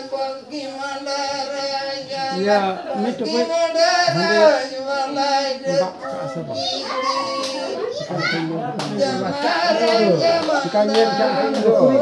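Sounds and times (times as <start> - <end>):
women and children chattering: 0.1 - 12.0.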